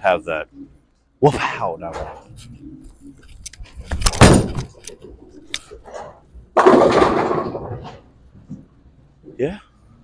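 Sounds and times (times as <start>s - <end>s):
bowling pins crashing: 4.1s - 4.8s, 5.8s - 8.7s.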